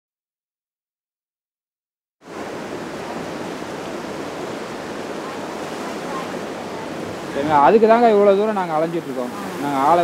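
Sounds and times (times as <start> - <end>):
sea surf: 2.2 - 10.0
wind: 2.2 - 10.0.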